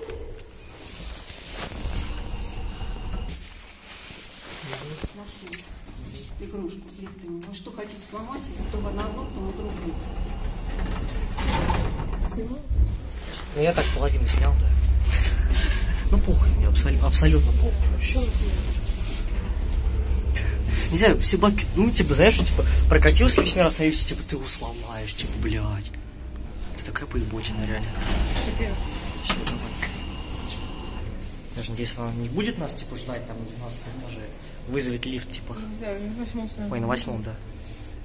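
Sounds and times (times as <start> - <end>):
lift doors sliding rumble: 0.0 - 3.7, 8.1 - 36.4
rushing noise: 12.8 - 31.5.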